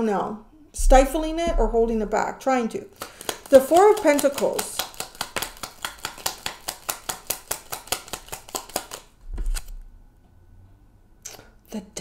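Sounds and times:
soft low thump: 0:00.8 - 0:02.2
cards being shuffled: 0:03.0 - 0:09.8.

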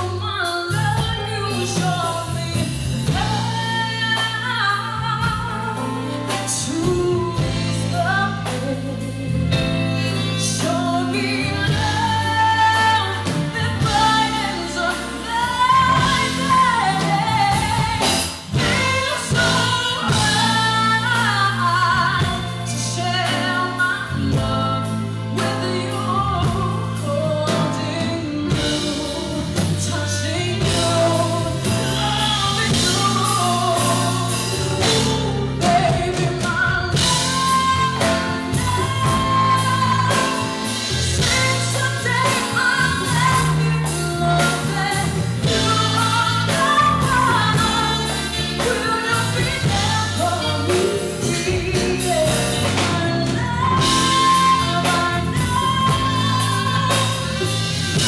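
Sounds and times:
bass line: 0:00.0 - 0:58.0
drums: 0:00.0 - 0:58.0
keyboards: 0:00.0 - 0:58.0
woman singing: 0:00.0 - 0:58.0.

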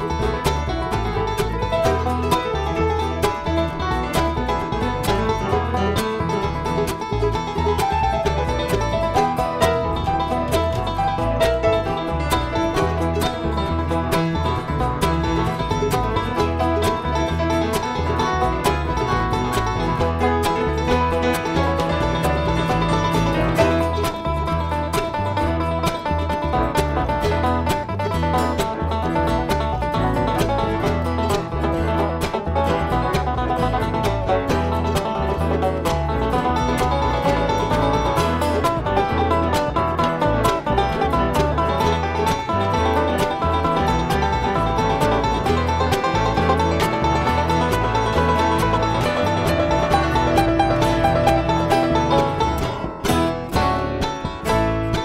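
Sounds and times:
banjo picking: 0:00.0 - 0:55.0
bass line: 0:00.0 - 0:55.0
guitar picking: 0:00.0 - 0:55.0.

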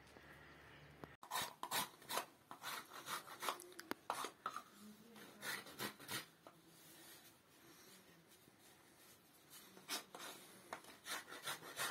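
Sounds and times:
knife shaving wood: 0:01.2 - 0:04.4, 0:05.2 - 0:06.3, 0:09.5 - 0:11.9.

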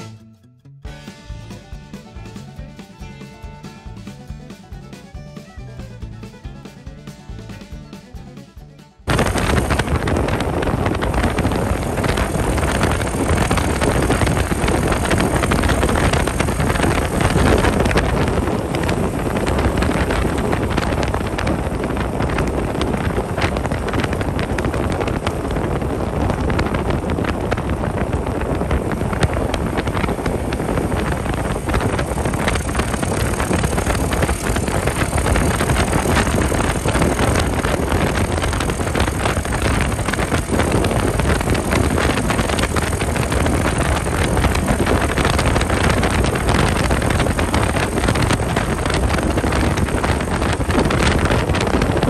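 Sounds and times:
minibike engine running: 0:01.0 - 0:52.0
wind rush on microphone: 0:09.0 - 0:52.0.

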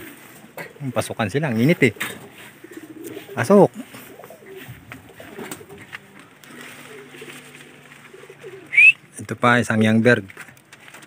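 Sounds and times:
pigeons cooing: 0:00.0 - 0:09.2.

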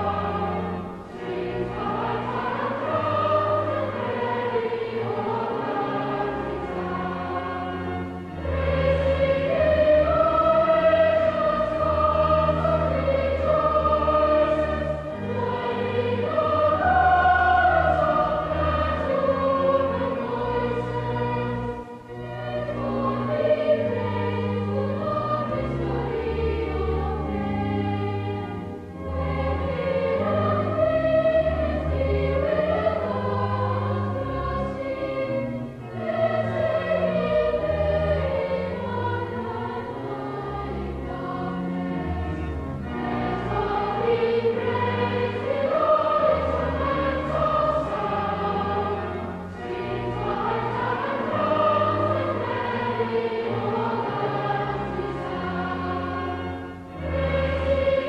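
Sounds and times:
children's choir singing a hymn: 0:00.0 - 0:58.0
low organ notes: 0:00.0 - 0:58.0.

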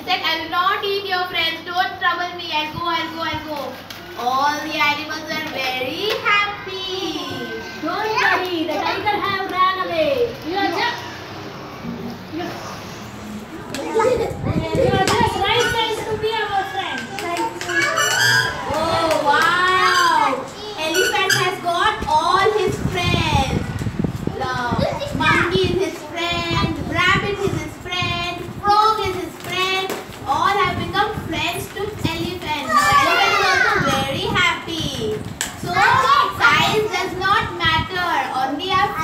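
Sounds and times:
young children talking and calling: 0:00.0 - 0:39.0.

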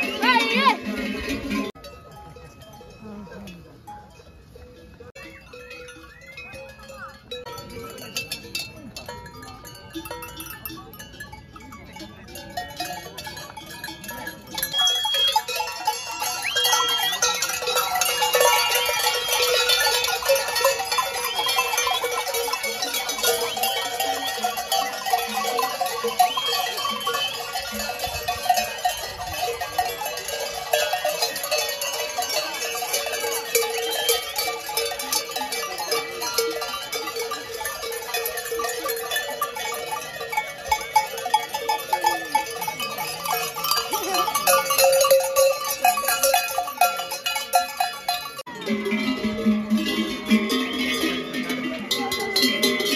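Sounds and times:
goat bells clanking: 0:00.0 - 0:52.9.

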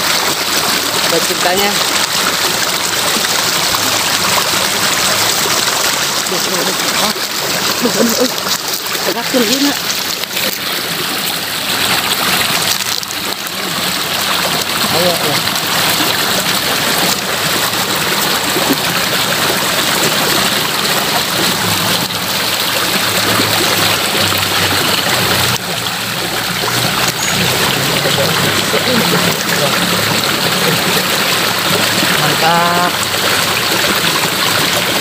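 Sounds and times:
water rushing in a ditch: 0:00.0 - 0:35.0.

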